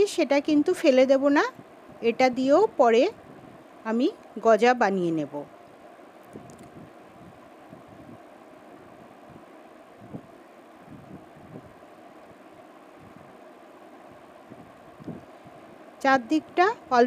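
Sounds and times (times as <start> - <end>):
faint background hiss: 0.0 - 17.0.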